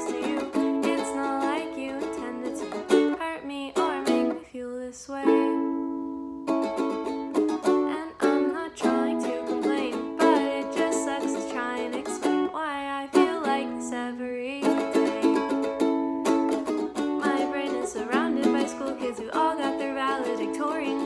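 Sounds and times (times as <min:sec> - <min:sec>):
woman singing: 0:00.0 - 0:06.1, 0:07.5 - 0:21.0
ukulele strumming: 0:00.0 - 0:21.0.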